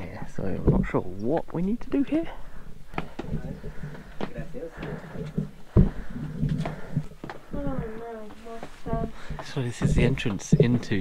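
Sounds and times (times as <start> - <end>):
shuffling: 2.8 - 11.0
quiet knocks: 2.9 - 11.0.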